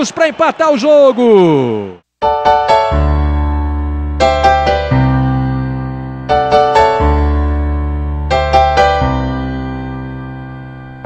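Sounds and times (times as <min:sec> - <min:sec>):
keyboard chord: 0:02.2 - 0:11.0.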